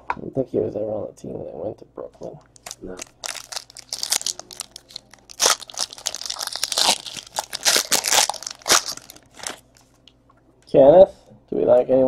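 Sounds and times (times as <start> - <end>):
foil wrapper crinkling: 2.6 - 9.6.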